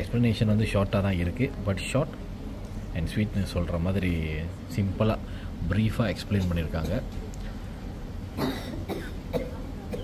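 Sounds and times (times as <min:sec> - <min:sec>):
low room hum: 0:00.0 - 0:10.0
person coughing: 0:06.4 - 0:07.1, 0:08.4 - 0:10.0.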